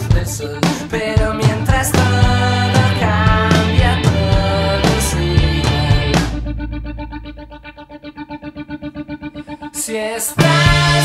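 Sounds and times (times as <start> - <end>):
electric guitar repeated notes: 0.0 - 11.0
low held note: 6.2 - 8.4.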